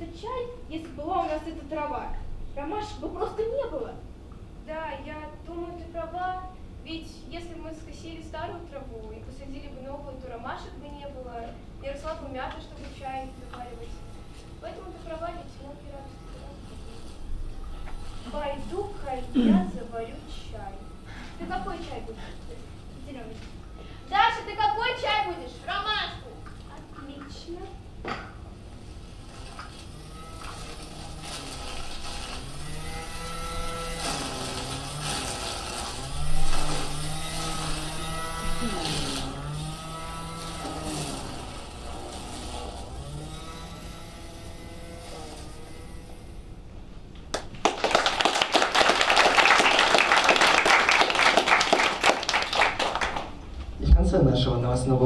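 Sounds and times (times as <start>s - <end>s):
audience applauding: 47.3s - 53.4s.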